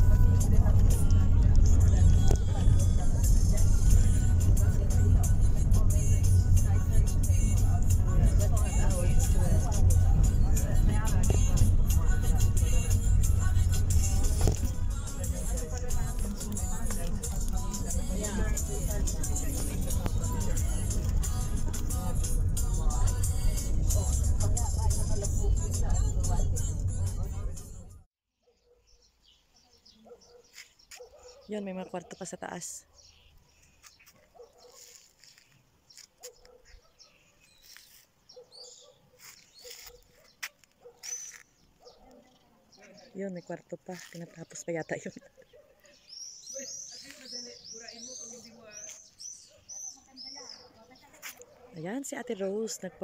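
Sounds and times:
distant indistinct voices: 0.0 - 28.0
music with beat and singing: 0.0 - 28.1
vehicle rumble from inside: 0.0 - 28.1
short high bird chirp: 33.0 - 42.0.

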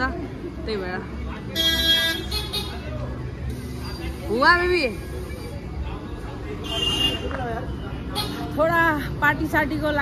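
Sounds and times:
scooter horn honking: 1.6 - 2.8, 6.6 - 7.3.

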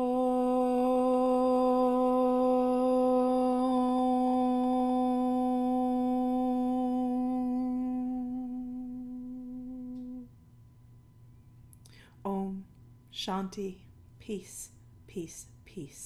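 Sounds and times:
woman chanting om: 0.0 - 10.3.

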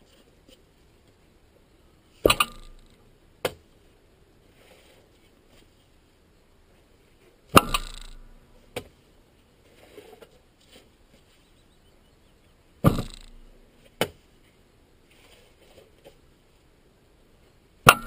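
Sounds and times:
spade striking peat: 2.2 - 2.9, 7.6 - 8.5, 12.8 - 13.5.

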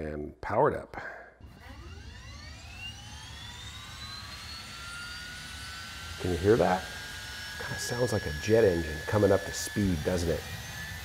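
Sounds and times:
electric motor whine rising in pitch: 1.4 - 11.0.

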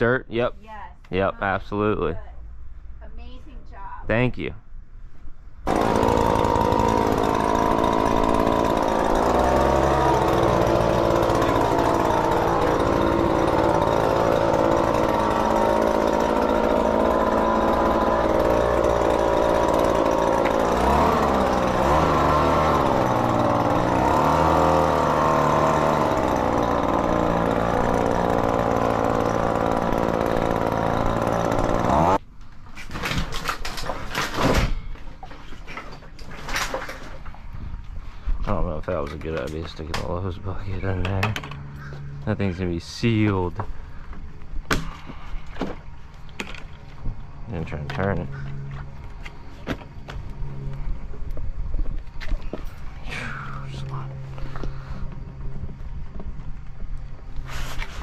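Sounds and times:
leaf blower engine running: 5.7 - 32.2, 38.8 - 58.0.

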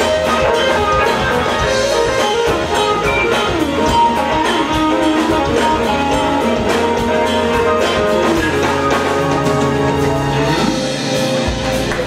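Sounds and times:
drum kit: 0.0 - 12.0.

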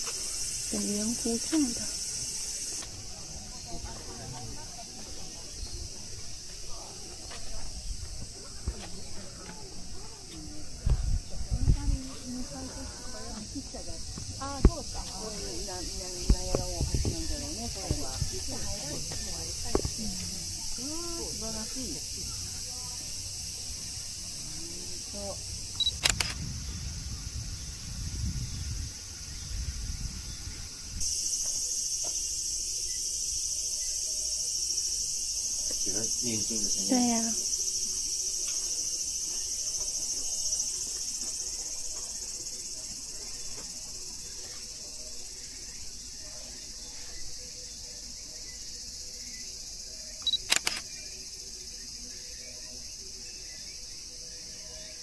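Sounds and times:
high-pitched insect chorus: 0.0 - 55.0
sharp click: 25.8 - 26.4, 50.2 - 50.9.

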